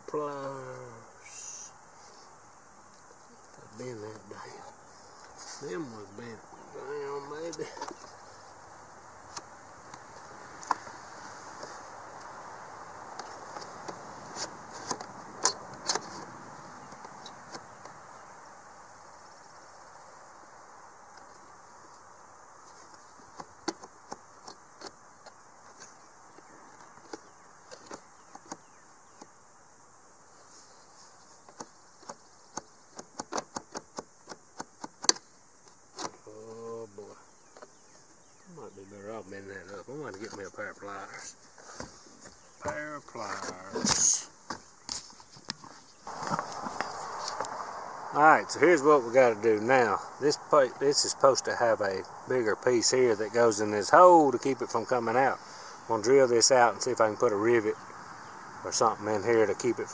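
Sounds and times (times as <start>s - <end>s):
high insect buzz: 0.0s - 59.9s.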